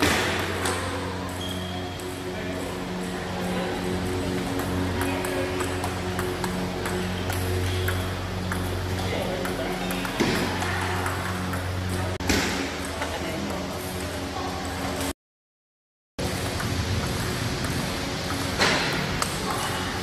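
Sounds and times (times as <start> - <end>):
background music with low notes: 0.0 - 15.1, 16.2 - 20.0
table tennis balls clicking: 4.4 - 12.2, 16.2 - 19.7.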